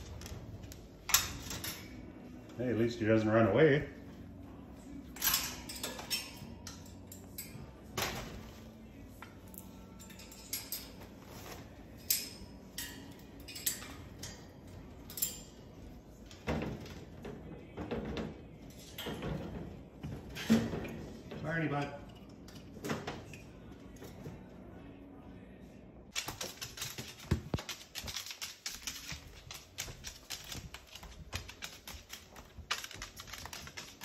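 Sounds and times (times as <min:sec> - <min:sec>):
rustling and knocking in cage: 0:16.2 - 0:21.5, 0:26.1 - 0:34.0.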